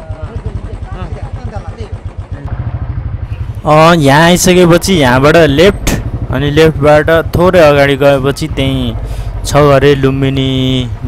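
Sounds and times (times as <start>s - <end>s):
motorcycle engine running: 0.0s - 11.0s
man talking: 3.6s - 11.0s.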